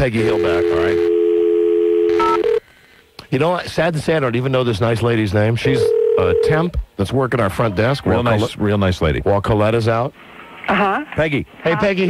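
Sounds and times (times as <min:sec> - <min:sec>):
telephone dial tone: 0:00.7 - 0:02.6.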